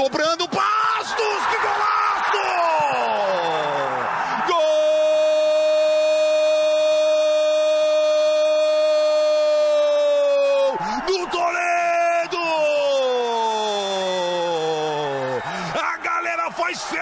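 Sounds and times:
stadium crowd roaring: 0.0 - 17.0.

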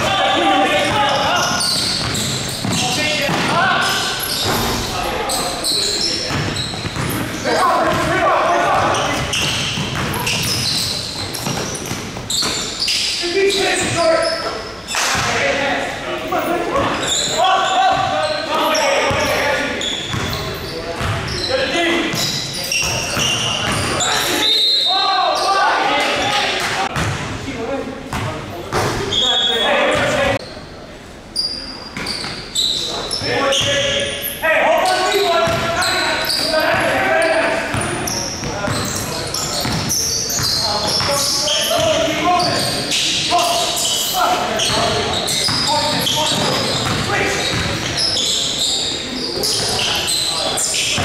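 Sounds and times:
players' voices and calls: 0.0 - 51.0
basketball bouncing on hardwood: 9.3 - 10.7.

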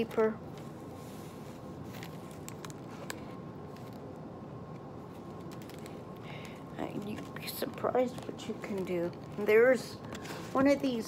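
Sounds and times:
furnace roaring: 0.0 - 11.0
paper pages rustling and turning: 0.0 - 11.0.

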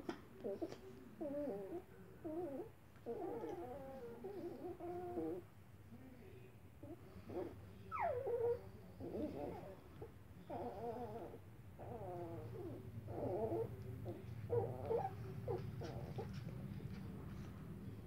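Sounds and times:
puppies whimpering: 0.4 - 5.4, 7.3 - 16.5.

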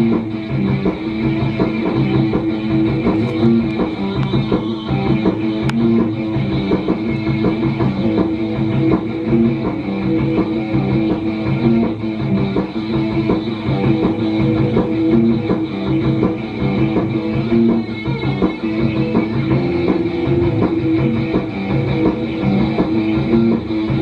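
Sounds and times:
rock band playing loudly: 0.0 - 24.0.

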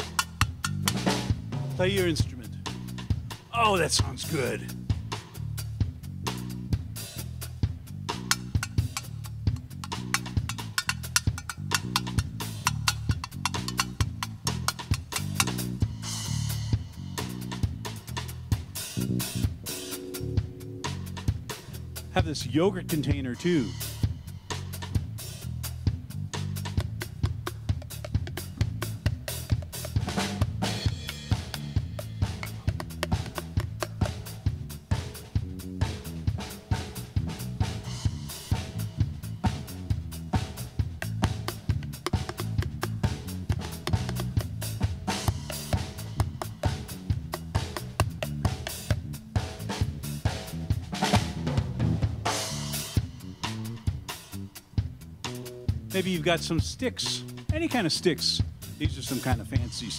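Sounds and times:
drum groove: 0.0 - 59.9
electric bass line: 0.0 - 59.9.

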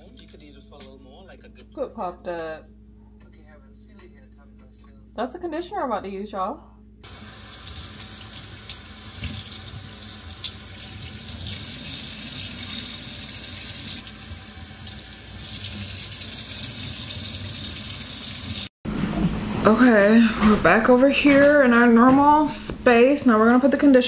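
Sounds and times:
faucet water splashing into sink: 7.0 - 18.7.

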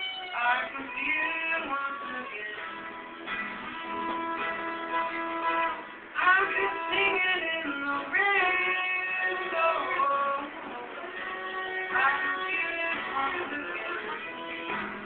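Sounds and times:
acoustic guitar: 0.0 - 15.0
sliding melody: 1.9 - 15.0.

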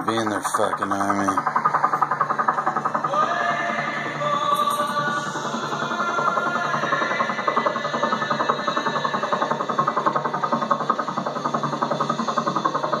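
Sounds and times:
faint music: 0.0 - 2.0
helicopter rotor chop: 0.0 - 13.0.

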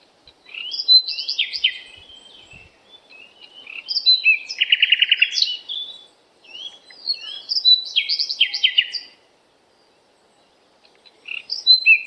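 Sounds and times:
songbird singing: 0.0 - 12.0.

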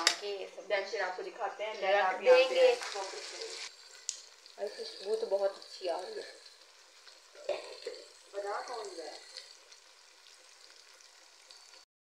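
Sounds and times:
vegetables sizzling in oil: 1.0 - 11.9.

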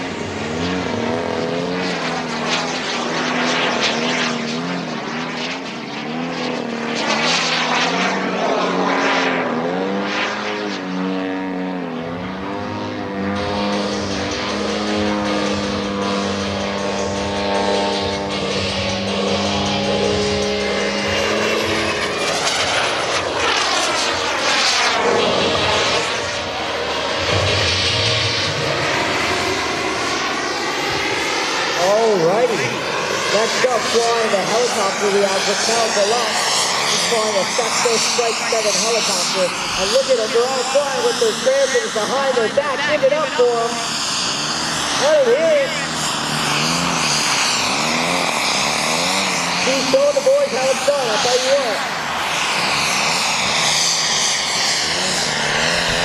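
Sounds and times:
model aircraft engine drone: 0.0 - 56.0
whooshing pass with high whine: 0.0 - 56.0.

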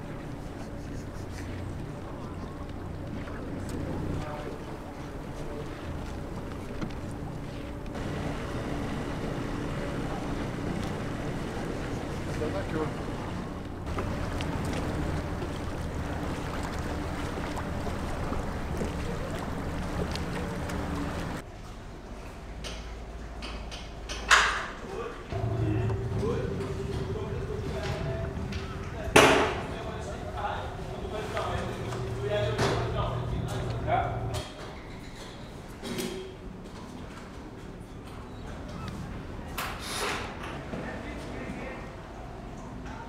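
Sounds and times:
boat motor humming: 0.0 - 21.4, 25.3 - 34.4
indistinct voices: 25.3 - 34.5.

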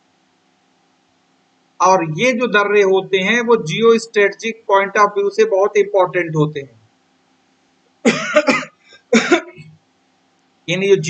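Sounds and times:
man coughing: 8.1 - 9.7.

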